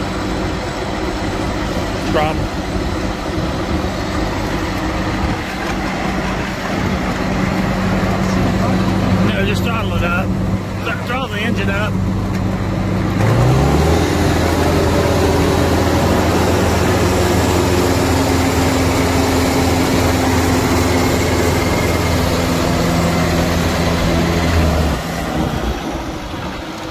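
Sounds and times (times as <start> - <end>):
diesel engine revving: 0.0 - 26.9.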